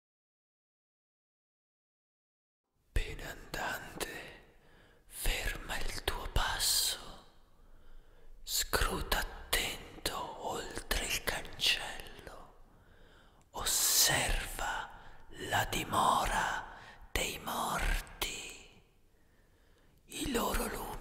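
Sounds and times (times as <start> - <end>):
person whispering: 3.0 - 7.4, 8.4 - 12.7, 13.5 - 19.0, 20.1 - 21.0.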